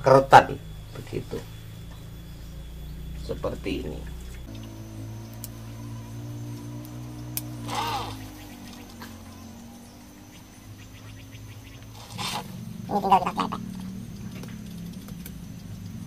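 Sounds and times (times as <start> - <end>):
low hum: 0.0 - 16.0
scissors snipping branch: 5.3 - 5.6, 6.5 - 9.0.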